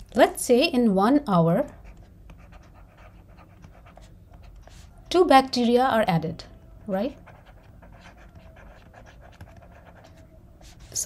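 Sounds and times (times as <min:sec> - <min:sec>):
stylus scratching on tablet: 0:01.4 - 0:11.0.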